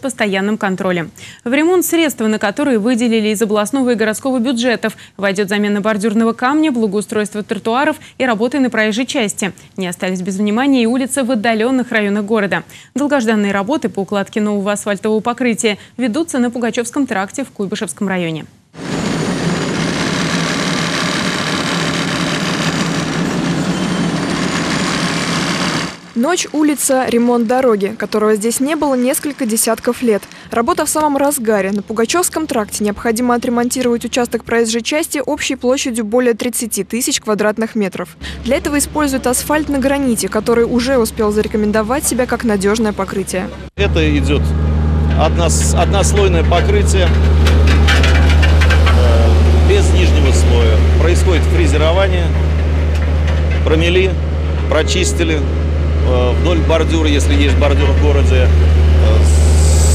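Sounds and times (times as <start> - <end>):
heavy construction machinery engines: 18.8 - 34.5, 38.2 - 59.9
irregular clatter: 45.0 - 49.1.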